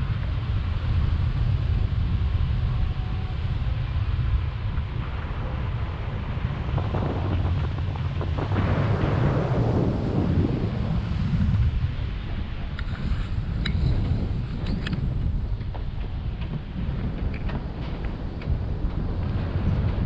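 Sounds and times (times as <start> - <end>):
wind buffeting microphone: 0.0 - 20.0.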